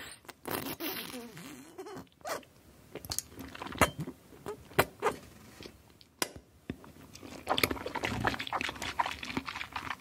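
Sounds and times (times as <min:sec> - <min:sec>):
warbling gurgle from glass: 0:07.3 - 0:10.0.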